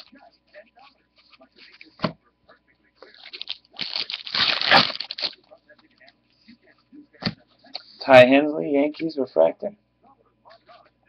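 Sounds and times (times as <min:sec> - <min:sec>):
foil wrapper tearing and crinkling: 0:03.0 - 0:05.4.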